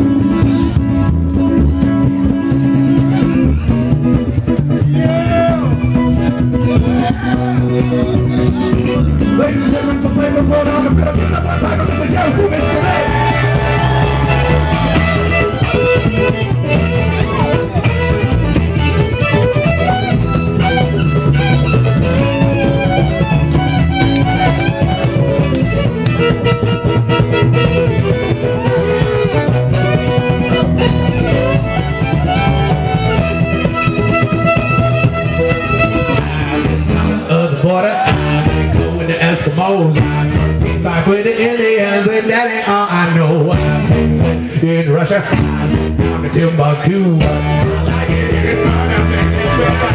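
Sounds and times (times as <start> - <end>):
strummed ukulele: 0.0 - 37.3
fiddle melody: 0.0 - 41.8, 43.2 - 49.9
upright bass: 0.0 - 49.9.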